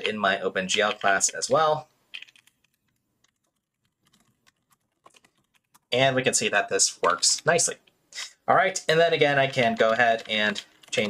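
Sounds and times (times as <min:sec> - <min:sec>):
soft keyboard keystrokes: 0:02.2 - 0:05.9.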